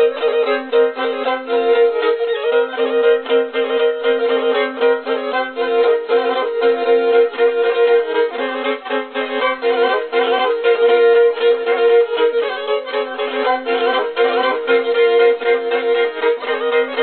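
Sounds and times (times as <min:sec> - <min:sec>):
bowed fiddle folk tune: 0:00.0 - 0:17.0.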